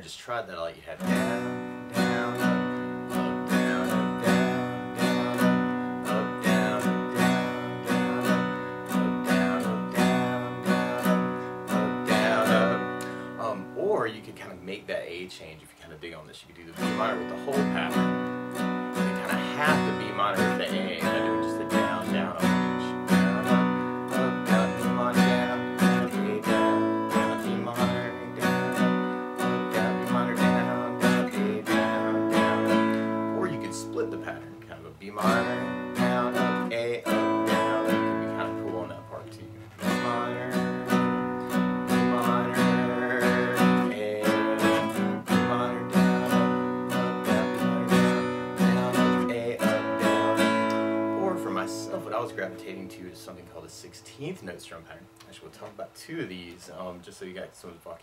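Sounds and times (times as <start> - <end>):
acoustic guitar strumming: 0.0 - 57.9.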